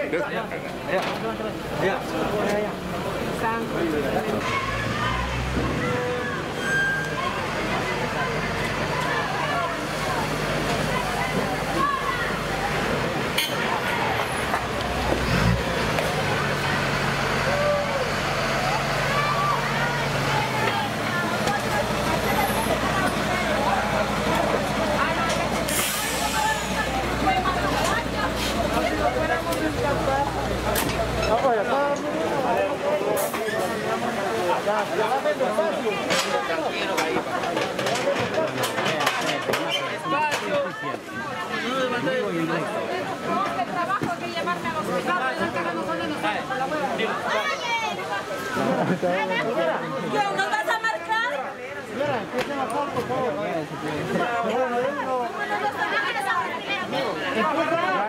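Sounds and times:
babble of many voices: 0.0s - 58.0s
brief hiss: 25.7s - 26.8s.

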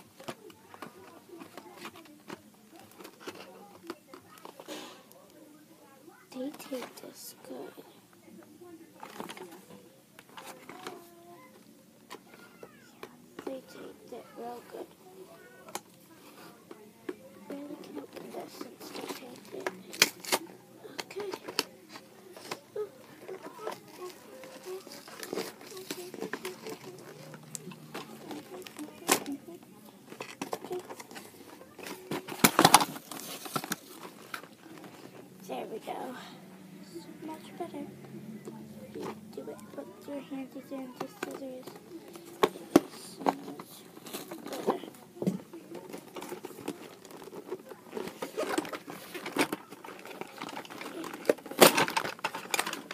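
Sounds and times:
toy packaging being opened: 0.0s - 5.1s, 9.0s - 35.2s, 38.9s - 52.9s
soft murmured speech: 0.0s - 52.9s.

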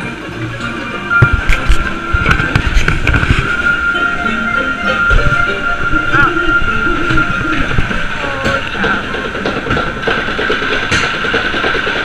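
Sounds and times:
roller coaster rumbling clatter: 0.0s - 12.0s
roller coaster wheel whine: 0.0s - 12.0s.

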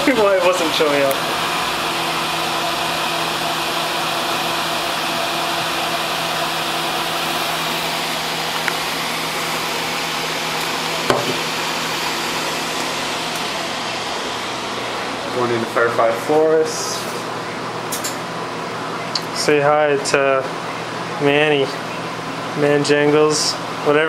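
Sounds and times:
fans whirring: 0.0s - 24.0s.

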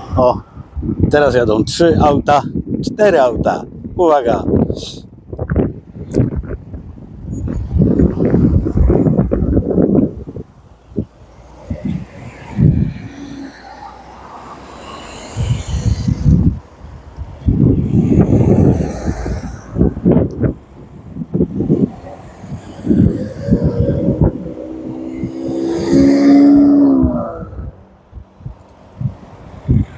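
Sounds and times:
wind buffeting microphone: 0.0s - 29.9s
cars driving past: 7.4s - 29.9s.

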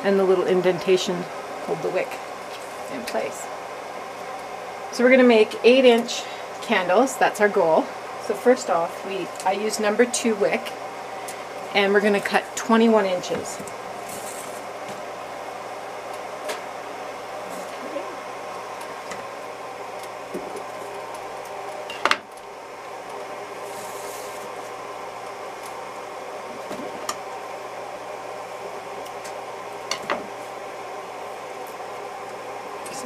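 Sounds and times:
room hum: 0.0s - 33.0s.

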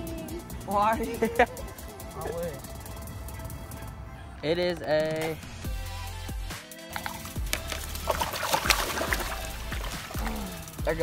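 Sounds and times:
background music: 0.0s - 11.0s
water splashing and sloshing: 6.9s - 10.8s.

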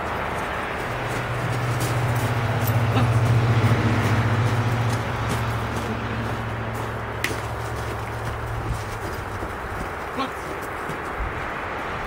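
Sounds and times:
footsteps on gravel: 0.0s - 11.8s
vehicle passing: 0.0s - 12.0s.

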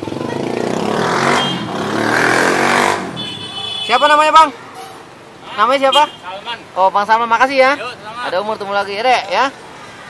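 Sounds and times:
vehicle engine passing by: 0.0s - 3.2s.

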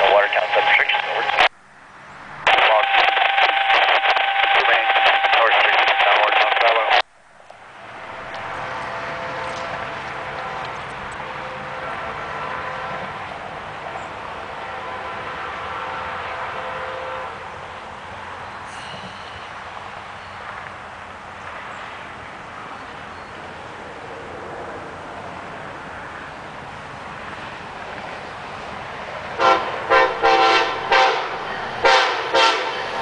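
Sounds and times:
tinny radio voice: 0.0s - 1.5s, 2.5s - 7.0s
steady outdoor hum: 0.0s - 33.0s.

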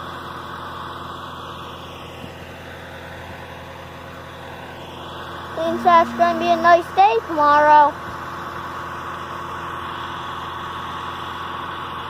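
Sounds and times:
tractor engine droning: 4.8s - 12.0s.

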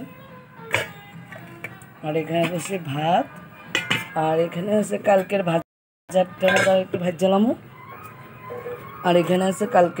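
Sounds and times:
dishes and pots clinking: 0.7s - 1.8s, 3.7s - 4.3s, 6.4s - 7.0s.

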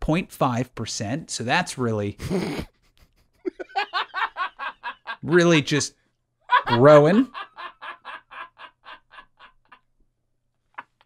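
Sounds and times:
man laughing: 2.2s - 5.8s, 6.5s - 9.9s.

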